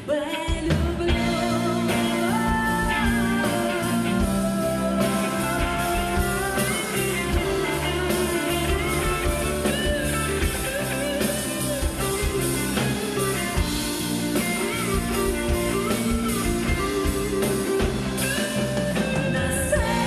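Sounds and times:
electric guitar melody: 0:00.0 - 0:20.0
drum kit beat: 0:00.5 - 0:20.0.

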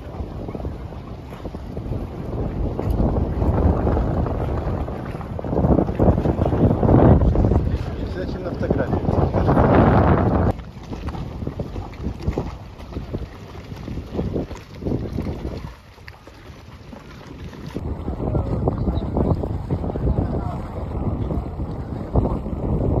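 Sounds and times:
sea waves washing: 0:00.0 - 0:23.0
wind buffeting microphone: 0:00.0 - 0:23.0.

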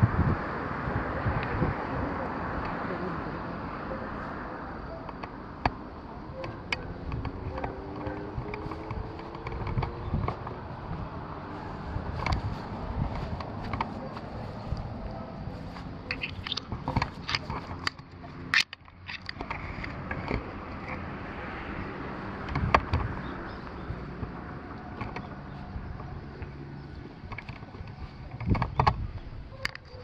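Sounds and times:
wind rumble on microphone: 0:00.0 - 0:30.0
footsteps crunching on dry grass: 0:11.0 - 0:17.2
camera handling noise: 0:15.6 - 0:21.0.

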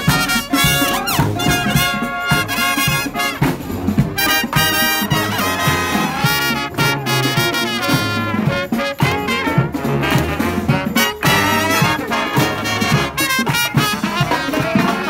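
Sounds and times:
marching band playing: 0:00.0 - 0:15.0.

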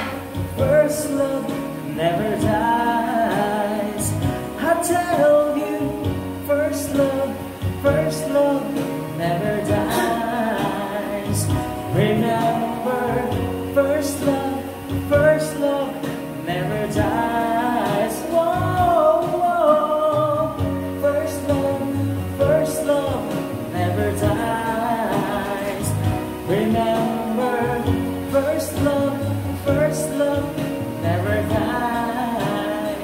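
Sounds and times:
backing track with bass line: 0:00.0 - 0:33.0
man singing a ballad: 0:00.0 - 0:33.0.

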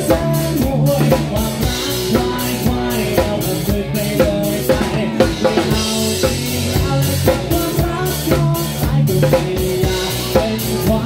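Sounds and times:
live band playing: 0:00.0 - 0:11.0
loud close drums: 0:00.0 - 0:11.0.

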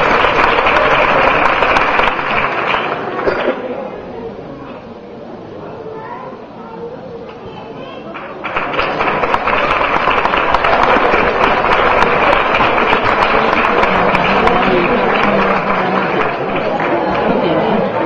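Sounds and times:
audience clapping: 0:00.0 - 0:03.6, 0:08.1 - 0:18.0
low crowd voices: 0:00.0 - 0:18.0.

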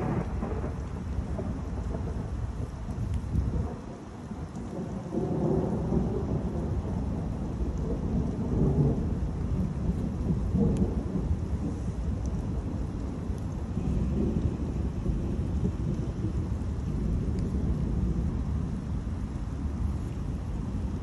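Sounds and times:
thunder rumbling: 0:00.0 - 0:21.0.

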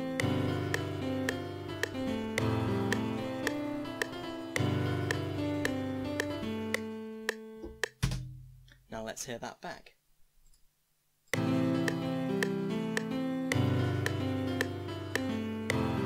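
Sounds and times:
keyboard chords over bass line: 0:00.0 - 0:08.0, 0:11.3 - 0:16.0.

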